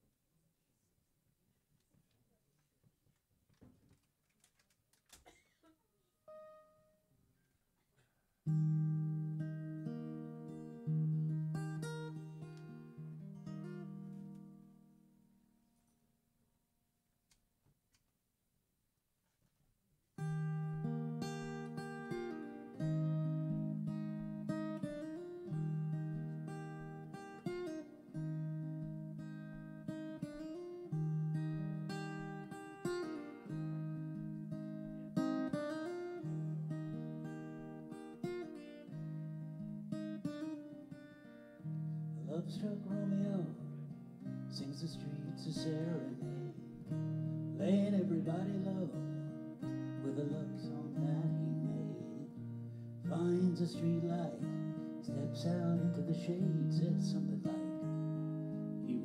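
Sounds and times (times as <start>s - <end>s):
acoustic guitar chords: 6.3s - 7.0s, 8.4s - 15.6s, 20.2s - 59.0s.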